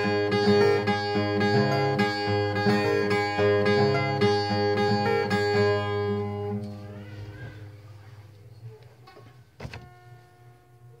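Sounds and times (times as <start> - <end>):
acoustic guitar notes ringing: 0.0 - 8.1.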